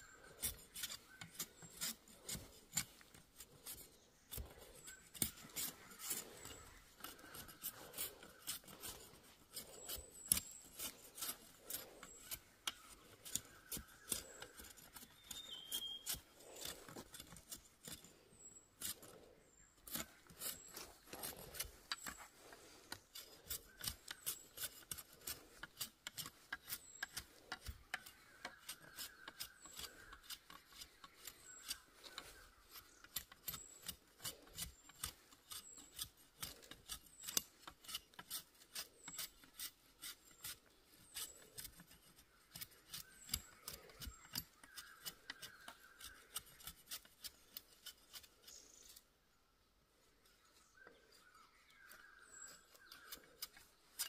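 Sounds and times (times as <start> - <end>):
knife scraping cuts on bamboo: 0.0 - 49.0, 51.9 - 54.0.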